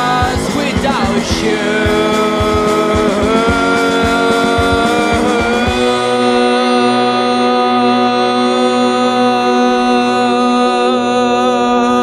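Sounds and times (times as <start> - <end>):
punk rock drum beat: 0.0 - 6.8
electric guitar chord: 0.0 - 12.0.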